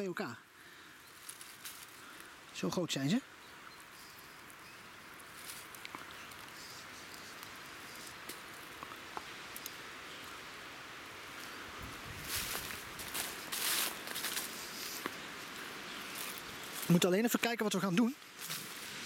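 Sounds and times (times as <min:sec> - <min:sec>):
faint ticks and rustles: 0:00.6 - 0:19.0
footsteps crunching through dry leaves: 0:01.1 - 0:02.3, 0:05.2 - 0:08.9, 0:11.4 - 0:17.1, 0:18.2 - 0:19.0.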